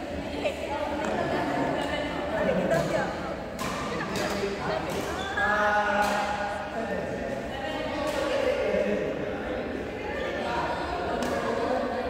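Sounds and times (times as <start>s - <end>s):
voices calling out in a hall: 0.0s - 12.0s.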